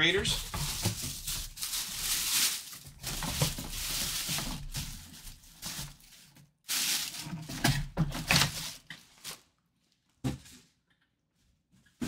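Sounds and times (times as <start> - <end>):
box and plastic bag rustling: 0.0 - 9.6.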